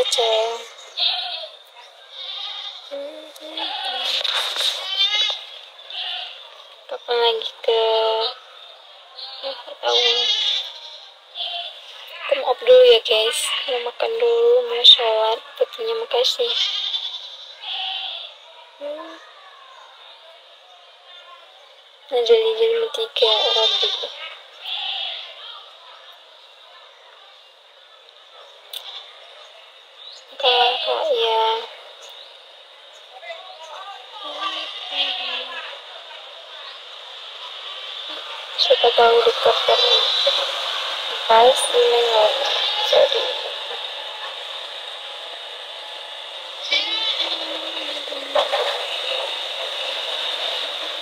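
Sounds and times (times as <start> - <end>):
steady background hiss: 0.0 - 51.0.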